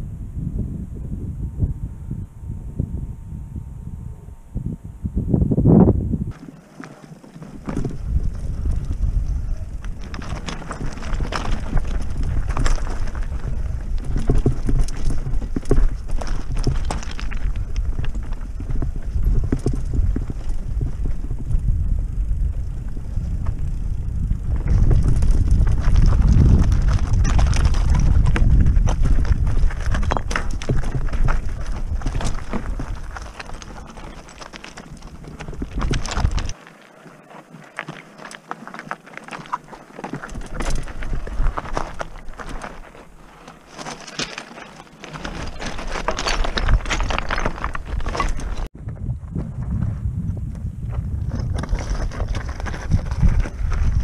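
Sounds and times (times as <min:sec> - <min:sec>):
wind rumbling on microphone: 0:00.0 - 0:06.6, 0:07.2 - 0:43.3, 0:45.0 - 0:54.0
bike chain and frame rattling: 0:06.3 - 0:48.7, 0:51.4 - 0:54.0
tyres crunching over stones: 0:06.3 - 0:49.6, 0:50.3 - 0:54.0.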